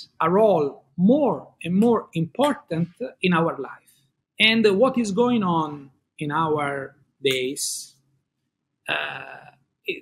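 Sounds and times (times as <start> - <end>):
man saying uh: 8.9 - 10.0.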